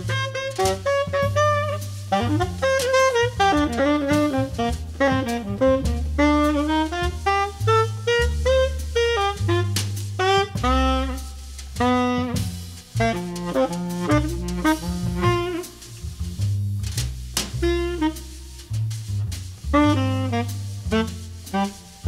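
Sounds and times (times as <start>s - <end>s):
bass: 0.0s - 22.0s
drums with cymbal strokes: 0.0s - 22.0s
jazz tenor saxophone: 0.0s - 22.0s.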